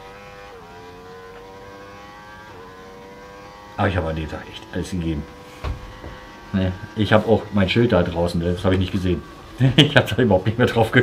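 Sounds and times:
motorcycle engine at high revs: 0.0 - 11.0.

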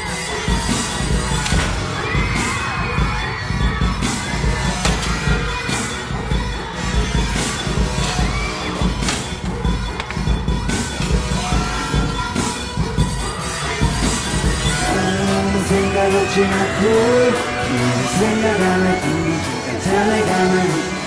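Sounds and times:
audience screaming and cheering: 0.0 - 21.0
hip-hop music with heavy bass: 0.0 - 21.0.

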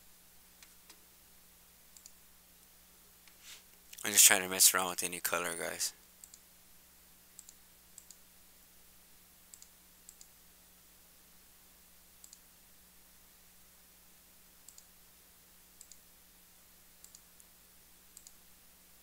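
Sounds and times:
faint steady hum: 0.0 - 19.0
computer mouse clicks: 1.9 - 2.2, 6.2 - 6.4, 7.4 - 8.2, 9.5 - 10.4, 12.2 - 12.4, 14.7 - 14.9, 15.8 - 16.0, 17.0 - 17.5, 18.1 - 18.4.

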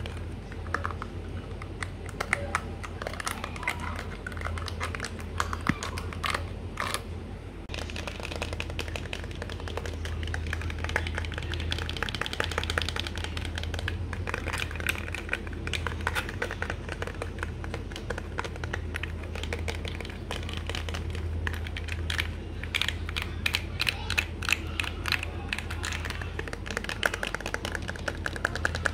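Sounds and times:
rapid tapping on hard objects: 0.0 - 7.0, 7.7 - 28.9
low steady hum: 0.0 - 28.9.

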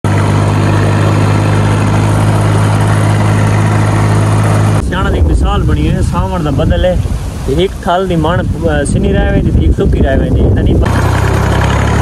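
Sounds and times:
tractor engine droning: 0.0 - 6.4, 10.2 - 12.0.

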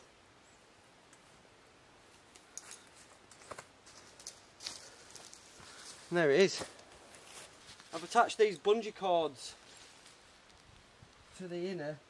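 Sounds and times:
small clicks of tent fittings: 2.2 - 3.6
tent fabric rustling: 2.8 - 8.4, 9.5 - 10.6.

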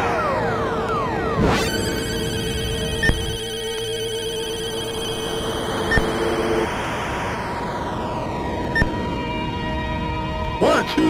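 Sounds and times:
high synth sweep: 0.0 - 8.9
sustained synthesizer tones: 0.0 - 10.6
sharp click and high beep: 3.0 - 3.4.

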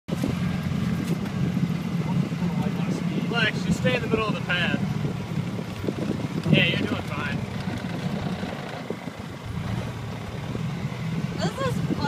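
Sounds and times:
utility vehicle engine running: 0.1 - 12.0
wind on microphone: 0.1 - 12.0.

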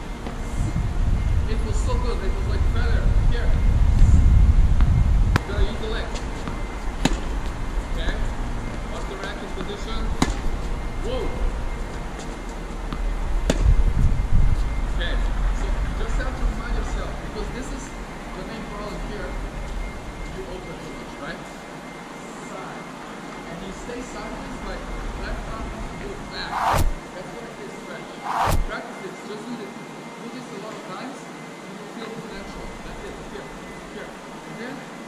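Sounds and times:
steady low rumble: 26.4 - 27.0, 28.2 - 28.7.

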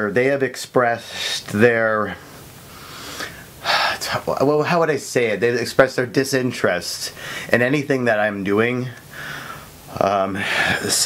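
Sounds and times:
man breathing: 2.3 - 4.2, 7.2 - 7.6, 9.0 - 9.8, 10.4 - 11.0.

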